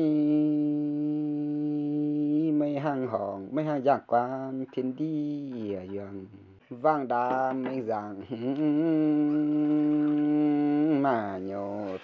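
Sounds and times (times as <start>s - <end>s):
person singing a long note: 0.0s - 2.6s, 8.3s - 12.0s.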